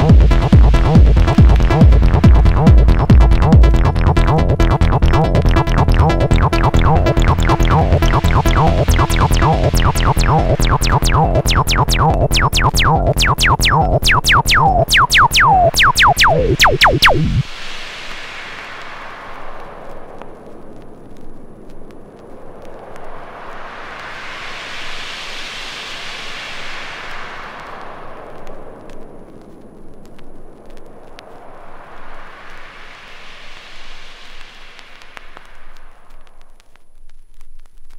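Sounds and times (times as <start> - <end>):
synthesizer white-noise sweep: 0.0 - 36.5
faint crackles: 5.0 - 37.9.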